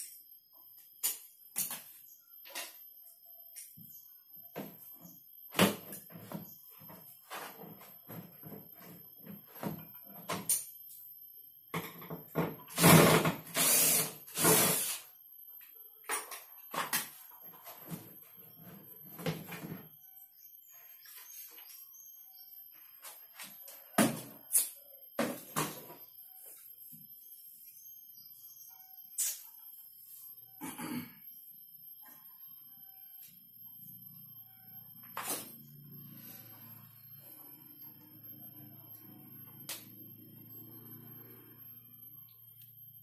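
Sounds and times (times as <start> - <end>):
cordless drill running: 12.8 - 14.9.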